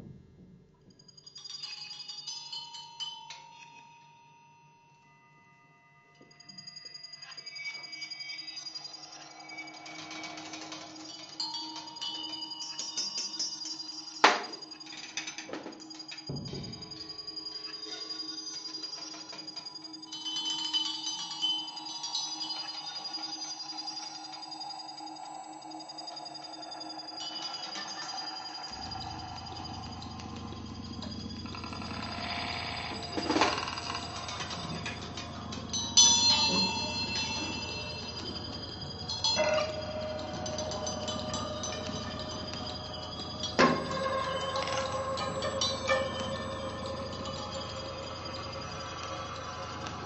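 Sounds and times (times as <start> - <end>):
electronic low drone: 15.5 - 50.0.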